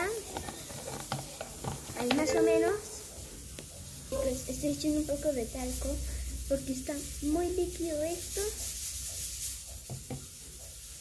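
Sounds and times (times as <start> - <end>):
wet scraping of slime stirring: 0.0 - 11.0.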